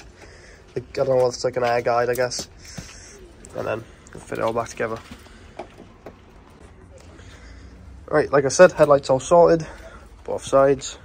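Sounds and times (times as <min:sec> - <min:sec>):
person speaking: 0:00.7 - 0:05.2.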